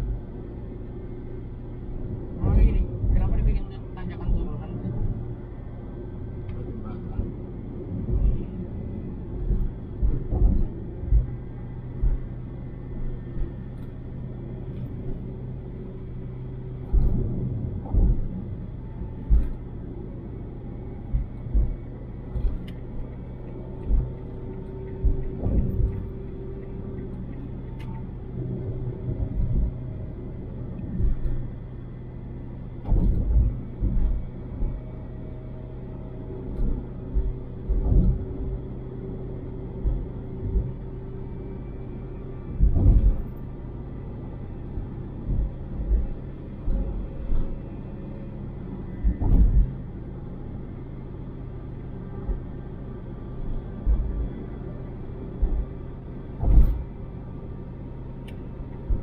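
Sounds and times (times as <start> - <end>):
engine and tyre hum: 0.0 - 59.0
low thumps: 24.9 - 26.4, 42.5 - 43.4, 48.9 - 49.9, 56.3 - 57.0.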